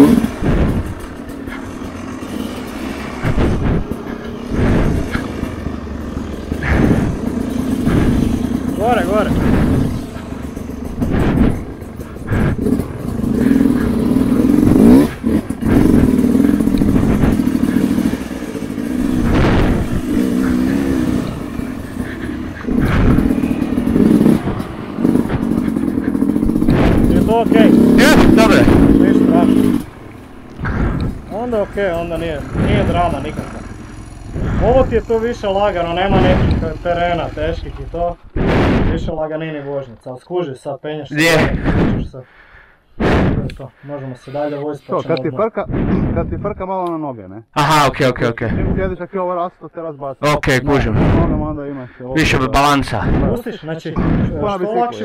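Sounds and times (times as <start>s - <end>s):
bike knocking and rattling: 0.0s - 39.3s
dirt bike engine revving: 0.0s - 39.3s, 41.2s - 43.8s.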